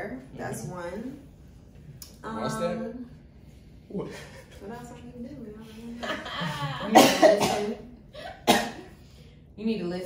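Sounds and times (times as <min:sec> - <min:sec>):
person coughing: 0:06.9 - 0:07.8, 0:08.4 - 0:08.9.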